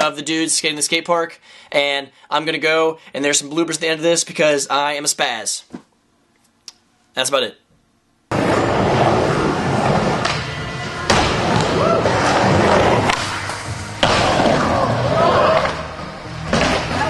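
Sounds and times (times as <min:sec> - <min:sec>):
music soundtrack: 0:08.3 - 0:17.0
skateboard rolling on ramps: 0:08.3 - 0:17.0
skateboard slams: 0:10.1 - 0:14.9, 0:16.4 - 0:17.0.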